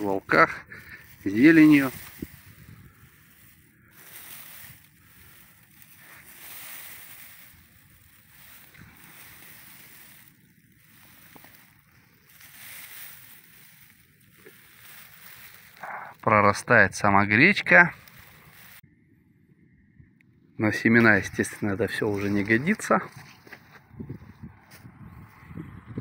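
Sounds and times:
small crackles: 0.0 - 18.9, 21.0 - 25.4
rustling of dry stalks: 0.0 - 19.0, 20.6 - 26.0.

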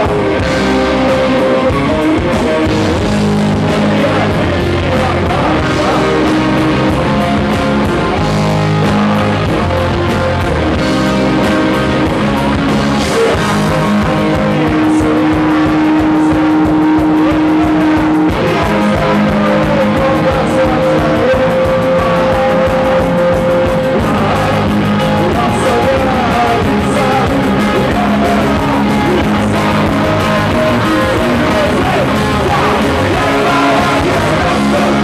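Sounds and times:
held electric guitar notes: 0.0 - 35.0
punk rock band playing: 0.0 - 35.0.

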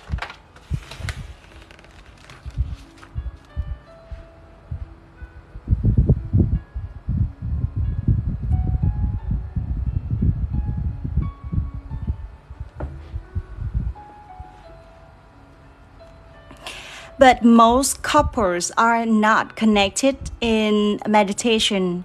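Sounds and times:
soft chime-like music: 2.7 - 18.1
low rumbling knocks: 12.6 - 14.0.

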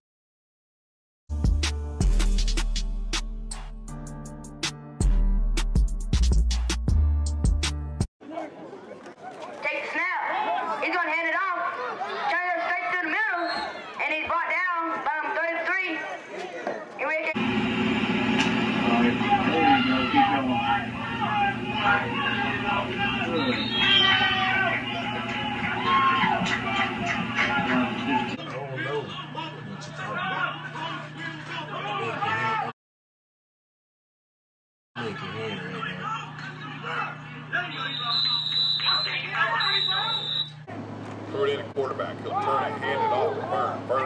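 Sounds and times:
crowd voices: 8.2 - 32.7, 35.0 - 44.0
people talking: 18.8 - 32.4
referee's whistle blast: 21.6 - 26.3, 37.7 - 40.6.

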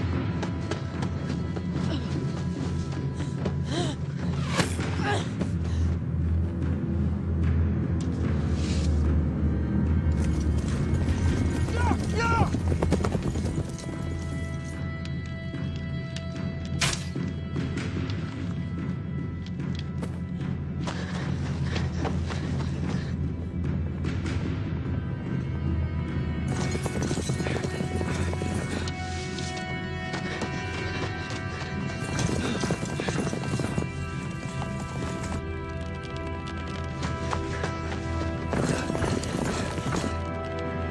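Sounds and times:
dramatic film score: 0.0 - 40.9
horse galloping: 10.1 - 14.8, 26.5 - 29.2, 31.0 - 40.6.

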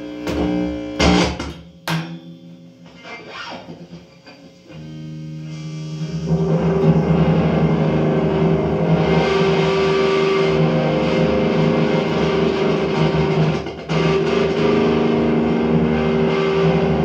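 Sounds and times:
electric guitar chords: 0.0 - 17.0.

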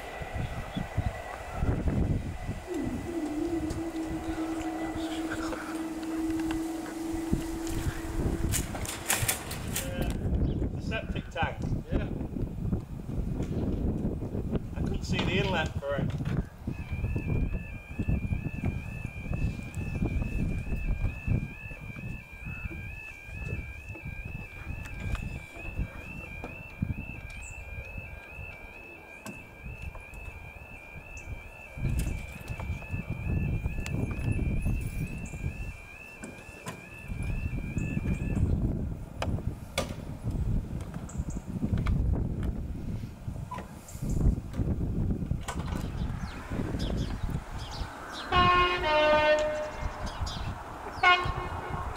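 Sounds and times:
level crossing two-tone alarm: 0.0 - 9.4, 16.7 - 38.7
low rumbling: 0.0 - 10.8.

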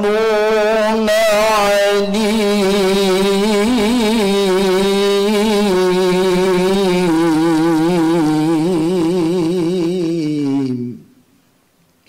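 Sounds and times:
man reciting melodically into microphone: 0.0 - 11.2.

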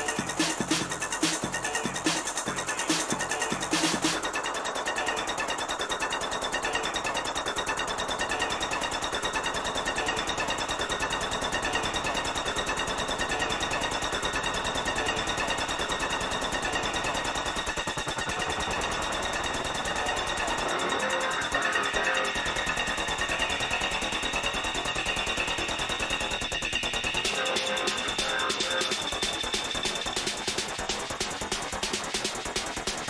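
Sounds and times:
fast buzzing synth pattern: 0.0 - 33.0
kick drum and bass: 0.0 - 33.0.

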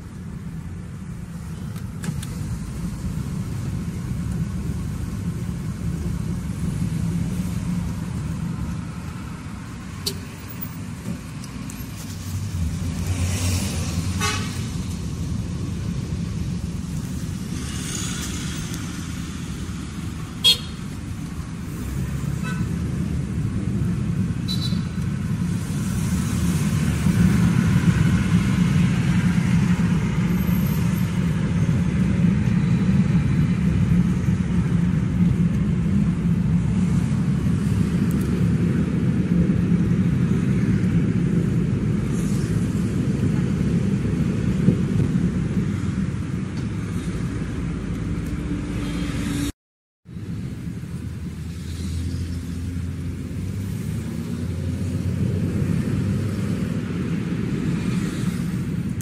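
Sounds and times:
car engine and tyres rumbling: 0.0 - 59.0
car horn toots: 20.4 - 20.8.

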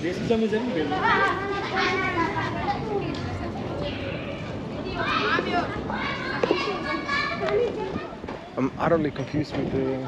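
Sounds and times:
children calling out and chattering: 0.6 - 10.0.

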